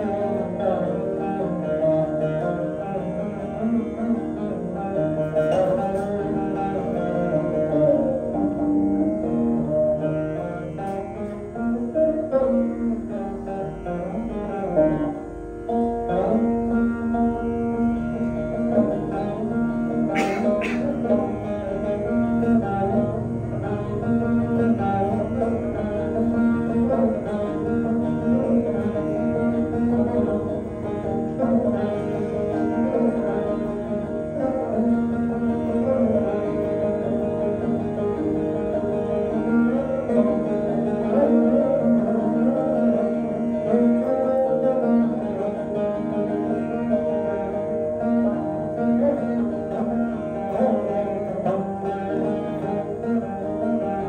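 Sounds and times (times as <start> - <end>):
plucked veena: 0.0 - 54.0.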